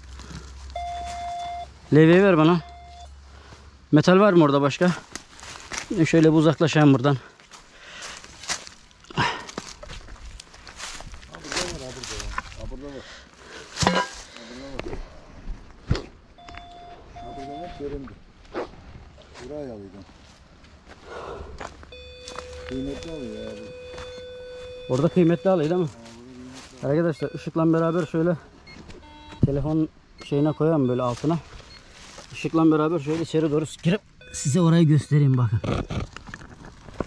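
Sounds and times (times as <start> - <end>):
footsteps on stony leafy ground: 0.0 - 1.6, 4.8 - 17.8, 18.4 - 29.0, 31.0 - 33.5, 36.2 - 37.0
metal detector tones: 0.7 - 1.7, 2.4 - 3.2, 16.4 - 18.0, 21.9 - 25.9, 26.8 - 31.9, 34.2 - 36.0.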